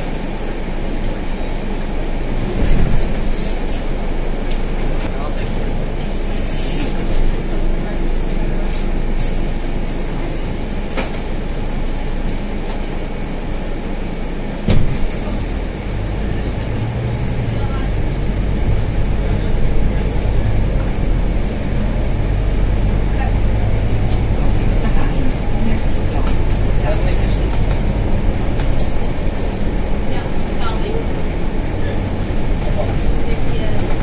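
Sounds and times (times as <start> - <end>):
bus engine hum: 0.0 - 34.0.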